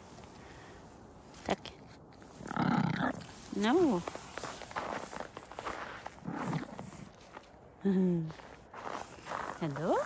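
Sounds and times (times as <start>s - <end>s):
footsteps crunching on snow: 3.1s - 7.6s, 8.2s - 10.0s.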